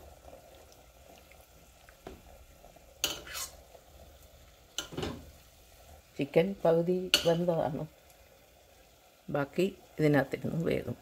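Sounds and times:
metal spoon scraping and clinking: 3.0s - 3.6s.

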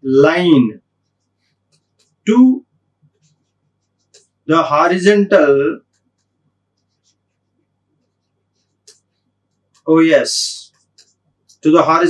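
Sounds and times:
person speaking: 0.0s - 0.8s, 1.9s - 2.7s, 4.0s - 5.9s, 9.8s - 12.0s.

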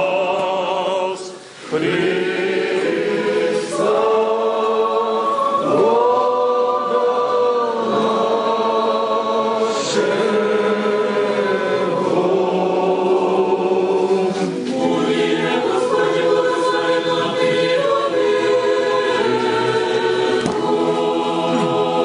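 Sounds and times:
church choir singing a cappella: 0.0s - 22.0s.

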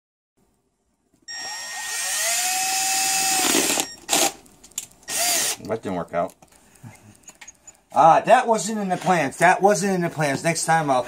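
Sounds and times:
power drill whine: 1.3s - 4.4s, 5.1s - 5.6s.

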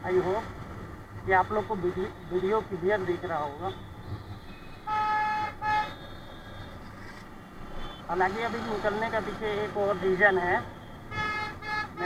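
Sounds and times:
road noise: 0.0s - 12.0s
vehicle horn honking: 4.5s - 6.8s, 11.1s - 12.0s.

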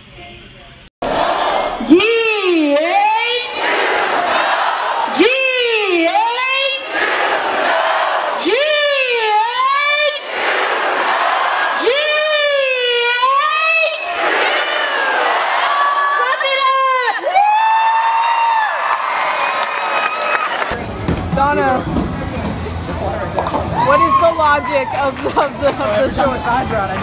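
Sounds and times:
crowd chanting: 1.0s - 2.0s, 3.4s - 5.3s, 6.7s - 13.0s, 13.8s - 16.3s
crowd shouting and cheering: 1.0s - 27.0s.

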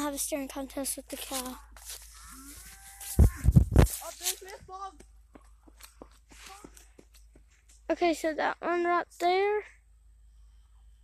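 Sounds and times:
hand rubbing phone microphone: 1.2s - 4.4s.

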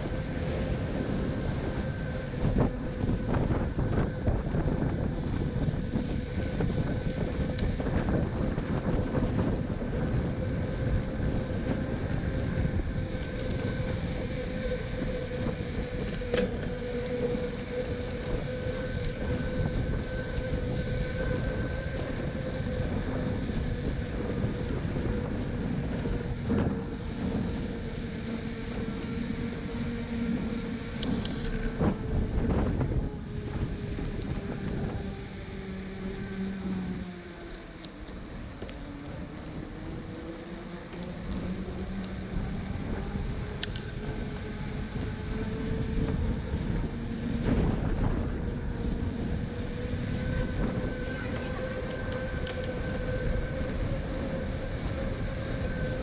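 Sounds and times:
thin steady whine: 0.0s - 56.0s
wind over microphone: 0.0s - 56.0s.

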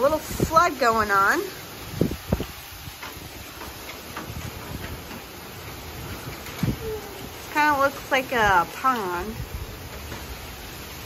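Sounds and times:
gusts buffeting microphone: 0.0s - 11.0s
heavy rain: 0.0s - 11.0s
hurricane wind: 0.0s - 11.0s.

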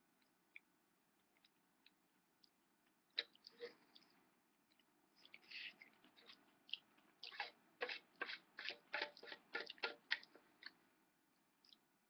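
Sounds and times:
wet chewing clicks: 0.2s - 10.8s.

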